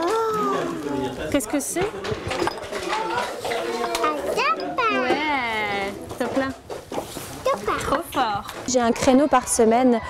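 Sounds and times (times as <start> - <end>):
young children chattering: 0.0 - 1.6, 2.8 - 6.0, 7.3 - 10.0.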